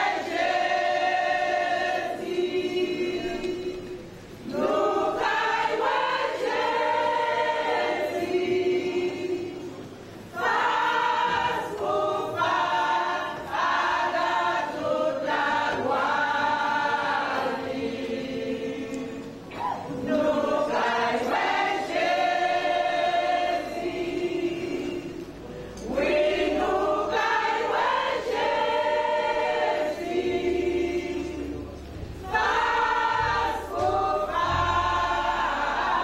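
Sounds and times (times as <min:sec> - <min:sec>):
choir singing a hymn: 0:00.0 - 0:36.0.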